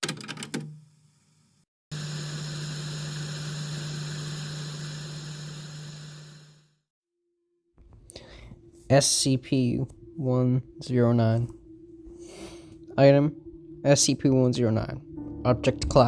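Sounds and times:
low hum: 0:07.8 - 0:16.0.

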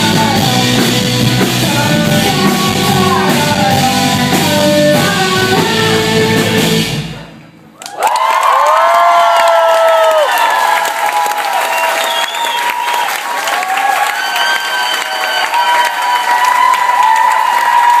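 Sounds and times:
audience applauding: 0:07.8 - 0:18.0
high whoops: 0:07.8 - 0:18.0.

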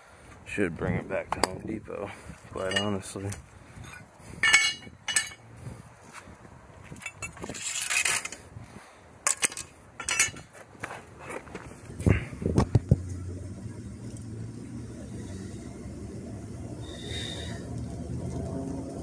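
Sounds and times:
metal tools clanking on concrete: 0:02.6 - 0:03.2, 0:03.8 - 0:05.4, 0:06.9 - 0:08.4, 0:09.3 - 0:10.5
low steady hum: 0:11.8 - 0:19.0.

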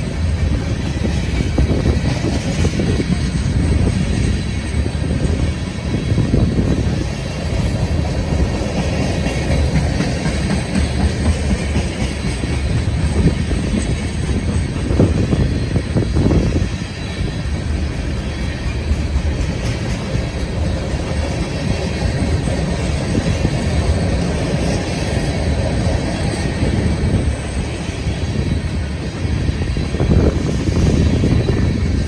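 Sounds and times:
freight train wheels rumbling on rail: 0:00.0 - 0:32.0.

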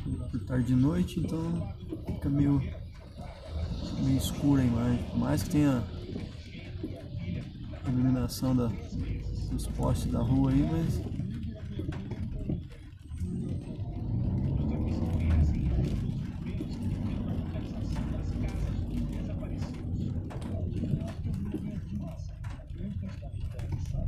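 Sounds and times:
car engine and road rumble: 0:00.0 - 0:24.0
rain and wipers on windscreen: 0:00.0 - 0:24.0.

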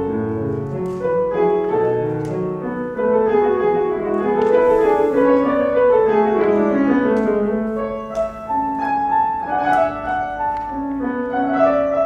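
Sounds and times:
slow piano piece: 0:00.0 - 0:12.0.

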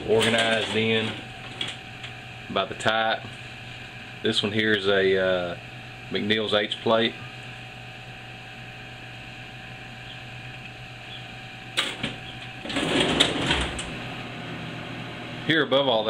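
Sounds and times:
wire clanking in metal drawer: 0:00.0 - 0:01.8, 0:11.8 - 0:13.9
wire scraping and rattling: 0:00.0 - 0:02.2, 0:11.8 - 0:14.0
steady low hum: 0:00.0 - 0:16.0.

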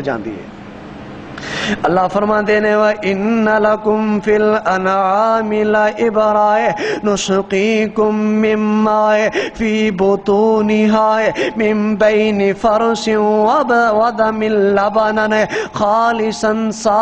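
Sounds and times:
man chanting over a microphone: 0:01.8 - 0:17.0.

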